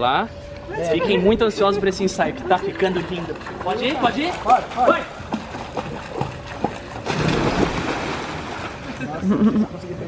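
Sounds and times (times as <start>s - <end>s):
water sloshing: 2.0s - 9.2s
big splash into pool: 7.0s - 9.0s.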